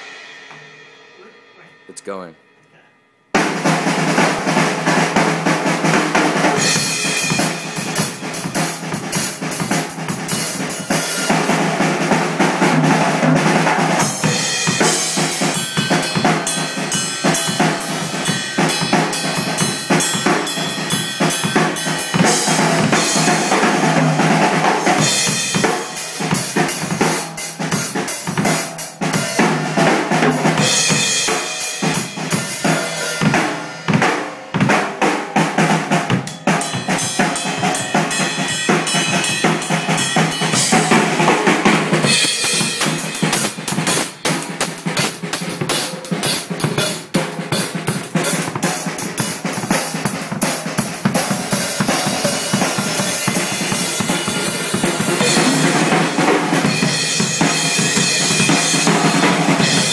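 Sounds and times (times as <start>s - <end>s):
drum kit playing: 0.0s - 2.3s, 3.3s - 59.9s.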